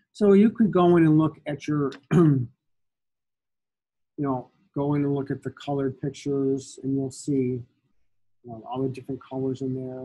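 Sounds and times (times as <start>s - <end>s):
man clearing his throat: 2.1s - 2.5s.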